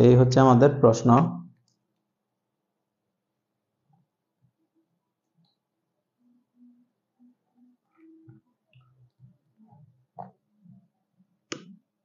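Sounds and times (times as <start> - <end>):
man speaking: 0.0 - 1.5.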